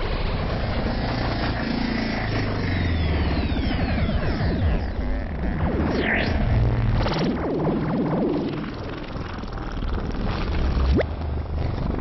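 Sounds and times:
throbbing synthesizer drone: 0:00.7 - 0:12.0.

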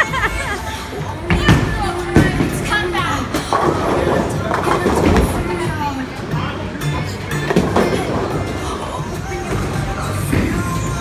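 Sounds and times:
music playing: 0:00.0 - 0:11.0
people's voices: 0:00.0 - 0:11.0.

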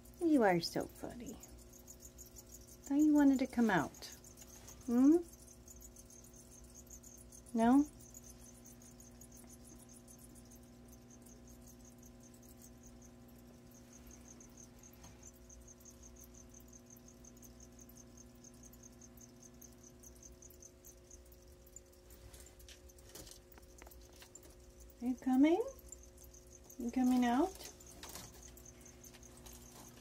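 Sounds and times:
high-pitched insect-like chirping: 0:00.0 - 0:30.0
low steady hum: 0:00.0 - 0:30.0.

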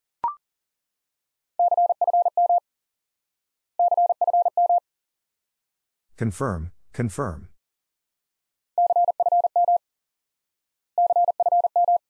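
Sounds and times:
morse code tone: 0:08.8 - 0:09.8, 0:11.0 - 0:12.0.

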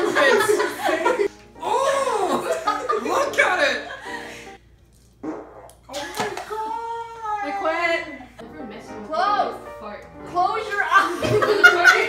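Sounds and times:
people laughing: 0:00.0 - 0:04.4, 0:10.9 - 0:12.0.

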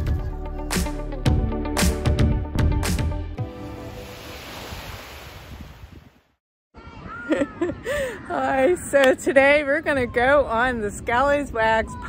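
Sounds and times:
waves breaking on pebble shore: 0:03.9 - 0:06.0.

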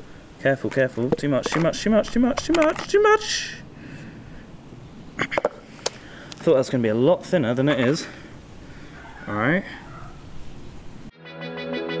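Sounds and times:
faint background noise: 0:00.0 - 0:11.1
metal tin knocking on tarmac: 0:01.1 - 0:02.9.

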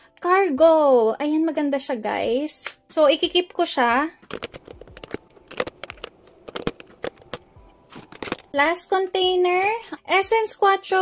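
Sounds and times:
plastic compacts clicking: 0:04.2 - 0:08.6.

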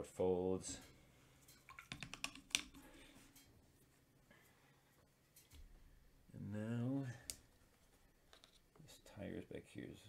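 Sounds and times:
paintbrush clicks and taps: 0:01.7 - 0:02.8.

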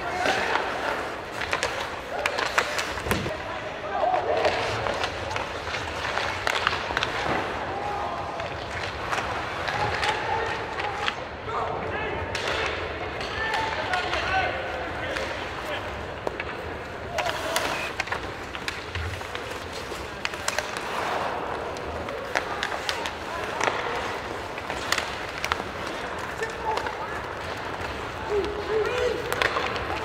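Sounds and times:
hockey sticks and puck clicking: 0:00.0 - 0:03.5, 0:04.1 - 0:11.4, 0:12.2 - 0:30.0
ice rink ambience: 0:00.0 - 0:30.0.

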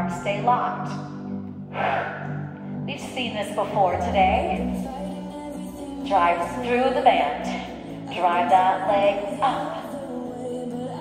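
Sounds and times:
background music low tones: 0:00.0 - 0:11.0.

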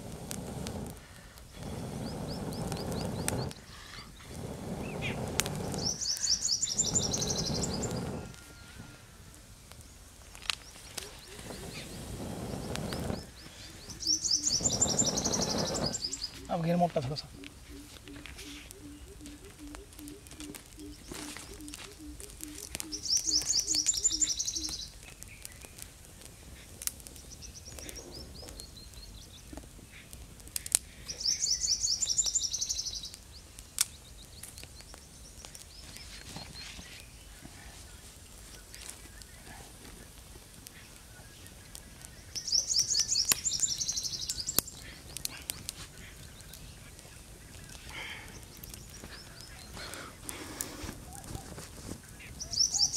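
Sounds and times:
bird singing high trill: 0:05.8 - 0:09.1, 0:11.1 - 0:25.0, 0:31.2 - 0:33.1, 0:42.2 - 0:45.1, 0:52.4 - 0:52.9.

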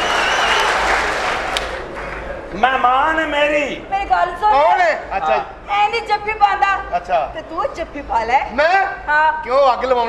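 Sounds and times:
audience applauding: 0:00.0 - 0:02.5.

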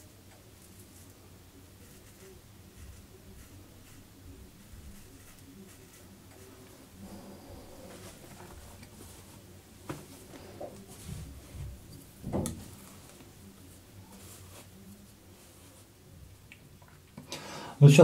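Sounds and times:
faint taps and rustles: 0:07.9 - 0:15.8.

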